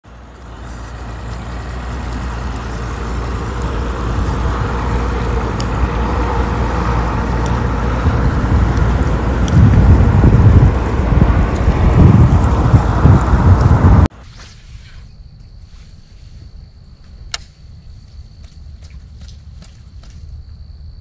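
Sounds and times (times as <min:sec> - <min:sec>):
outboard engines rumbling: 0:00.0 - 0:14.1
wind buffeting microphone: 0:00.1 - 0:14.1.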